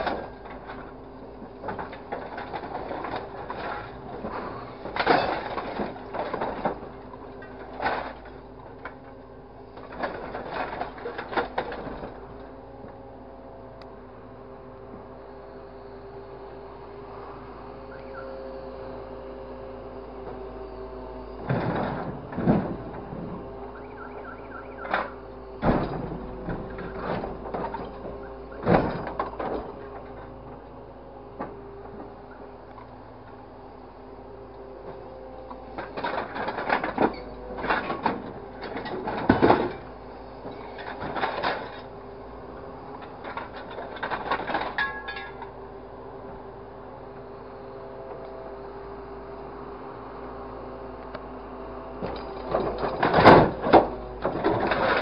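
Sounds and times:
hydraulic crane hum and whine: 0:00.0 - 0:55.0
scrap metal clattering and crashing: 0:01.7 - 0:09.0, 0:09.8 - 0:12.2, 0:43.2 - 0:45.5, 0:52.1 - 0:55.0.

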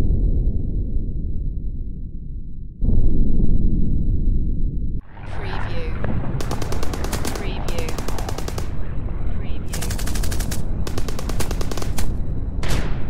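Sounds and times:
low battle rumble: 0:00.0 - 0:13.0
automatic gunfire bursts: 0:06.4 - 0:08.8, 0:09.6 - 0:12.2.

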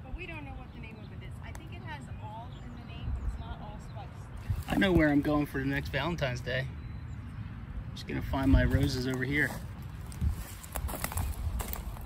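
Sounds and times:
footsteps crunching on wood chips: 0:04.5 - 0:05.3, 0:08.4 - 0:12.0.

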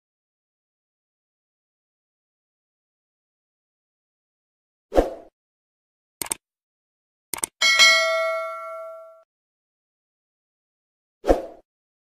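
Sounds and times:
bell ding: 0:07.6 - 0:09.2.

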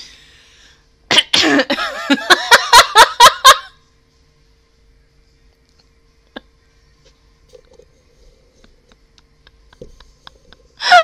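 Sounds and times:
woman laughing: 0:01.4 - 0:03.8, 0:08.7 - 0:11.0.

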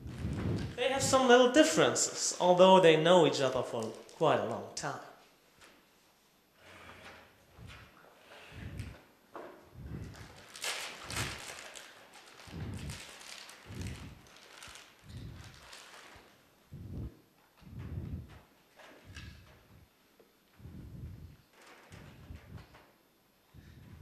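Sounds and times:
rustling: 0:06.6 - 0:19.9.

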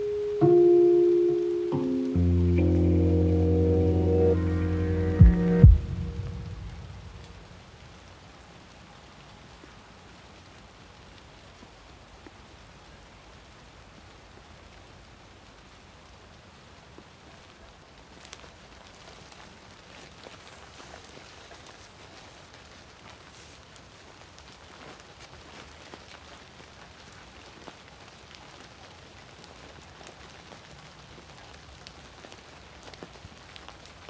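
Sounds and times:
faint outdoor hiss: 0:00.0 - 0:34.0
music ending: 0:00.4 - 0:07.4
small clicks and rustles: 0:16.8 - 0:34.0.

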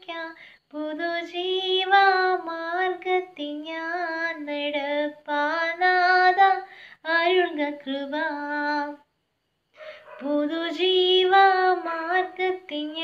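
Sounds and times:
woman singing unaccompanied: 0:00.0 - 0:09.1, 0:10.1 - 0:13.0.

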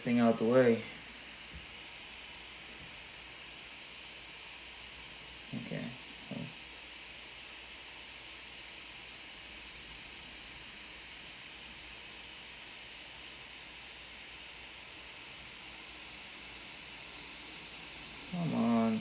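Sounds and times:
thin high-pitched whine: 0:00.0 - 0:19.0.

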